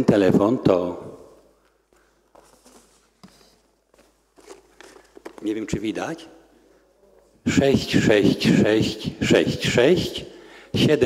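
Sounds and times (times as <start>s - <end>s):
paper poster rustling: 1.3s - 7.4s.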